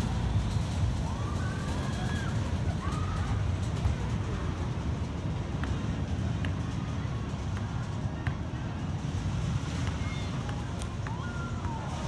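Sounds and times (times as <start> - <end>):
amusement park background noise: 0.0 - 12.0
roller coaster train rumbling: 0.0 - 12.0.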